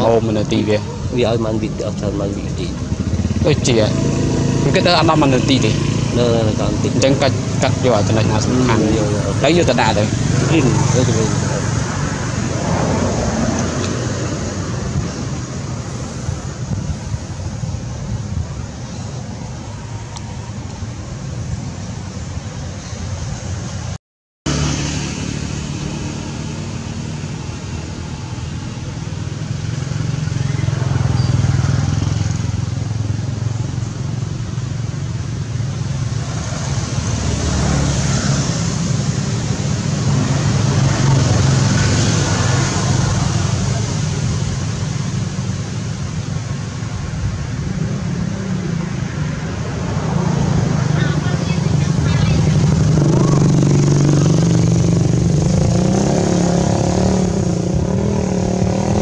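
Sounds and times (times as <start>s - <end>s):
vehicle engine noise: 0.0s - 59.0s.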